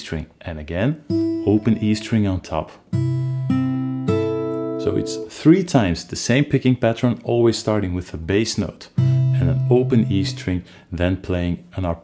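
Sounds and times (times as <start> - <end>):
acoustic guitar fingerpicking: 1.1 - 2.1, 2.8 - 5.3, 9.0 - 10.5.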